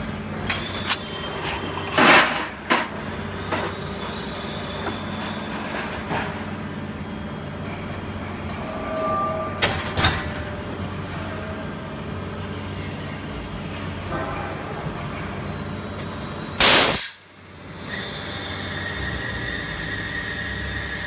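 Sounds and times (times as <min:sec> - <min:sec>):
machine mechanical hum: 0:00.0 - 0:21.0
short machine whine: 0:03.2 - 0:14.2.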